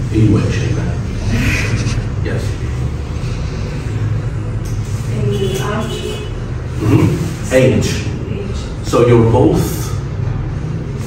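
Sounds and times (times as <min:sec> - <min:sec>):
low rumble: 0:00.0 - 0:05.1.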